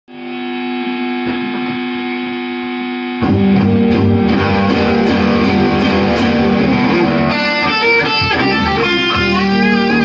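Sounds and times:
distorted electric guitar music: 0.1s - 10.0s
bass: 3.1s - 7.6s, 8.2s - 10.0s.

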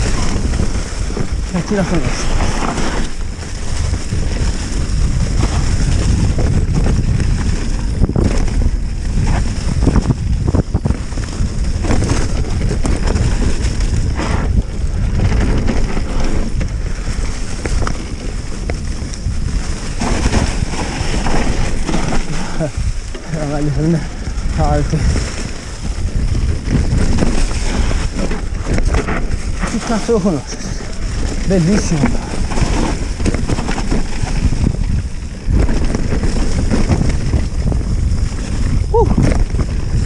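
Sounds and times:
bike clattering over bumps: 0.0s - 40.0s
tyres rolling over leaves: 0.0s - 40.0s
wind on microphone: 0.0s - 40.0s.

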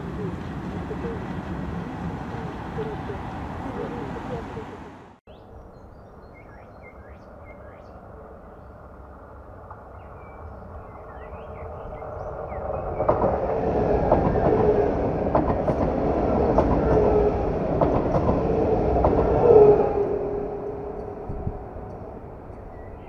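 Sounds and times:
passenger train rushing by: 0.0s - 5.2s, 10.7s - 23.0s
birds chirping: 0.0s - 8.8s, 9.8s - 13.4s, 20.9s - 23.0s.

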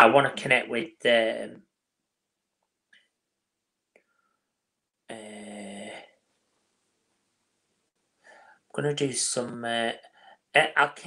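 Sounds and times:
man humming: 5.1s - 6.1s.

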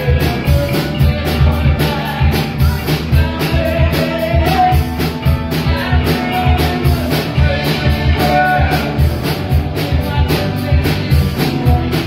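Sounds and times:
bass guitar: 0.0s - 12.0s
drum kit steady beat: 0.0s - 12.0s
electric guitars: 0.0s - 12.0s.

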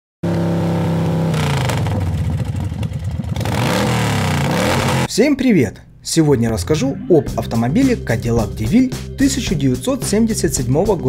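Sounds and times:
car engine revving: 0.2s - 5.1s.

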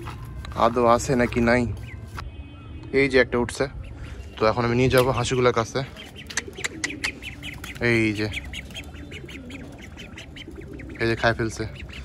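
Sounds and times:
ducklings peeping: 0.0s - 2.2s, 3.7s - 12.0s.

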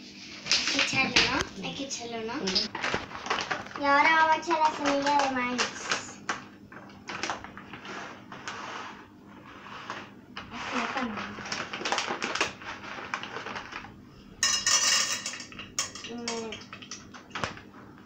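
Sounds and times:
popcorn kernels clattering in metal pot: 14.4s - 17.1s.

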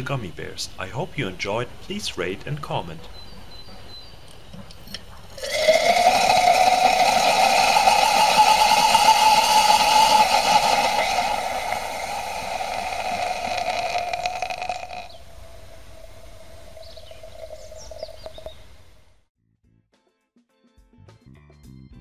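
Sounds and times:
loud rushing chemical roar: 5.4s - 18.1s.

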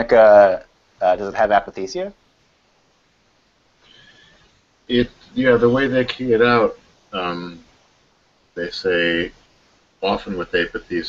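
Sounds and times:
man speaking: 0.0s - 2.2s, 4.9s - 7.6s, 8.6s - 9.4s, 10.0s - 11.0s
faint high-pitched whine: 0.0s - 11.0s.

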